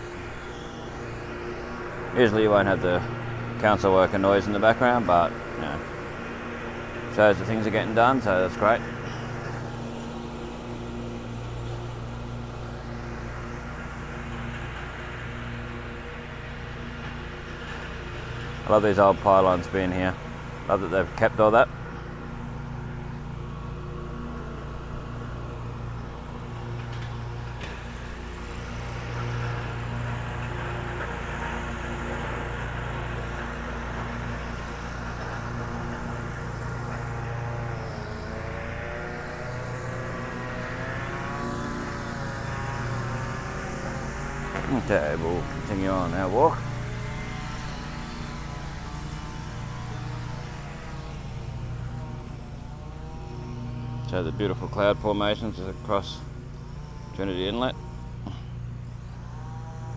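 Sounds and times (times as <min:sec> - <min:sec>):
machinery engine droning: 0:00.0 - 0:59.9.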